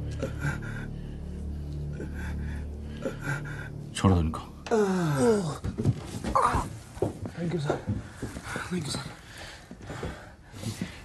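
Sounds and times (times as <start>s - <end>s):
low film score drone: 0.0s - 5.6s.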